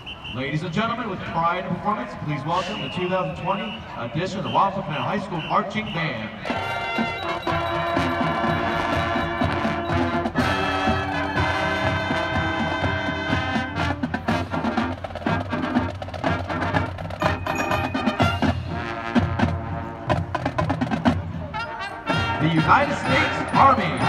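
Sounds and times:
marching band playing: 0.0s - 24.0s.

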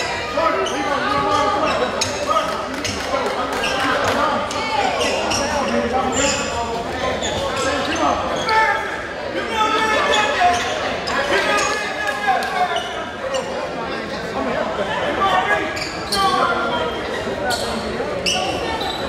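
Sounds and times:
players and spectators chattering: 0.0s - 19.0s.

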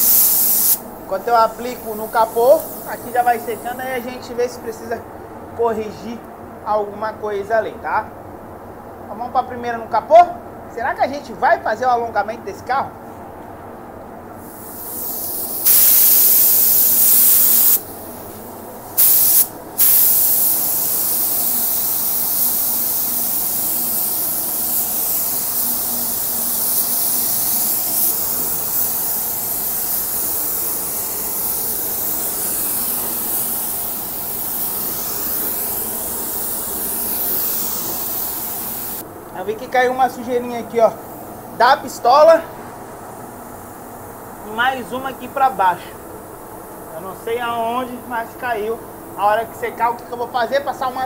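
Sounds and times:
paint spray gun hissing: 0.0s - 4.2s, 14.4s - 39.1s.

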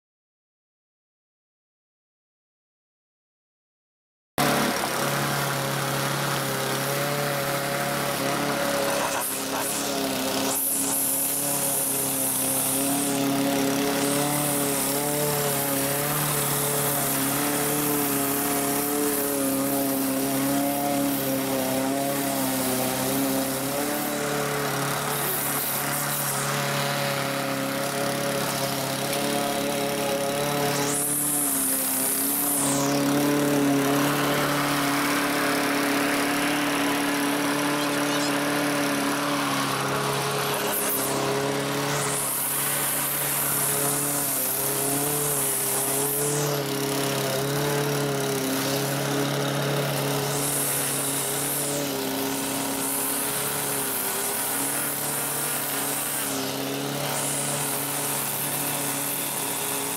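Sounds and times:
push mower engine running: 4.4s - 59.9s
string trimmer revving: 4.4s - 59.9s.

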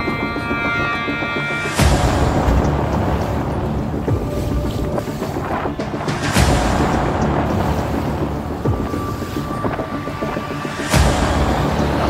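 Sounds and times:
choppy seawater rushing: 0.0s - 12.0s
wind buffeting microphone: 1.3s - 12.0s.

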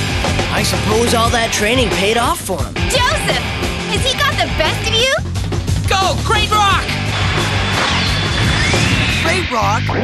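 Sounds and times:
background music: 0.0s - 10.0s
crash-like battle sound effect: 7.1s - 9.2s.

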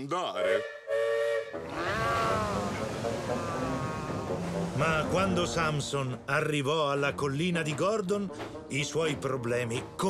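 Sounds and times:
steam locomotive whistle: 0.4s - 5.2s.

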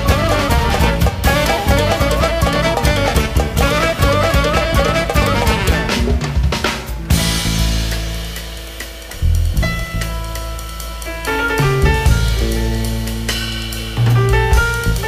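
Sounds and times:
drum and cymbal hit: 0.0s - 15.0s
jazz fusion band playing: 0.0s - 15.0s.

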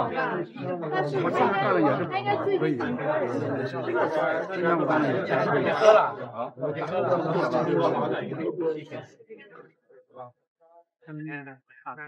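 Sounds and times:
crowd chatting: 0.0s - 9.7s.

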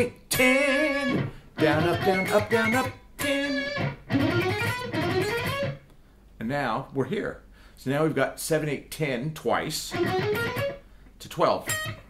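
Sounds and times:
electric guitar scale run: 0.9s - 5.8s, 10.0s - 10.8s.

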